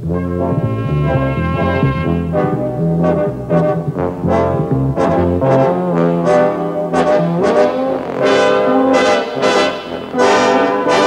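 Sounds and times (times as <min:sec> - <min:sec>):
low bass line: 0:00.0 - 0:10.4
brass ensemble sustained chords: 0:00.0 - 0:11.0.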